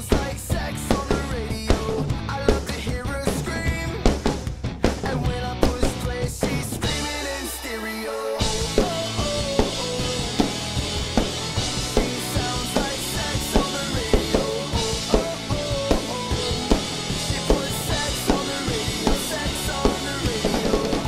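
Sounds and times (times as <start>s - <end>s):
recorded rock music: 0.0s - 21.0s
kick and snare hits: 4.0s - 6.6s.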